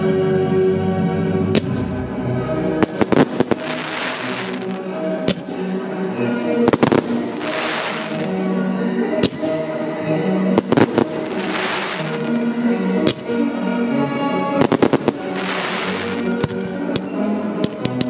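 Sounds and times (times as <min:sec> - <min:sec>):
orchestral classical music: 0:00.0 - 0:18.0
fireworks bangs: 0:02.8 - 0:05.6, 0:06.7 - 0:08.3, 0:10.6 - 0:12.4, 0:14.6 - 0:17.1
fireworks crackling: 0:02.8 - 0:05.6, 0:06.7 - 0:08.4, 0:10.6 - 0:12.4, 0:14.6 - 0:17.1.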